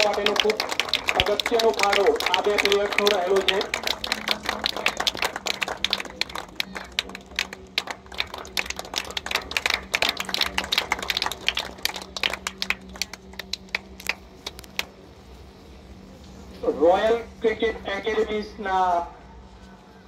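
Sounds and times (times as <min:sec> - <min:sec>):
crowd clapping: 0:00.0 - 0:15.0.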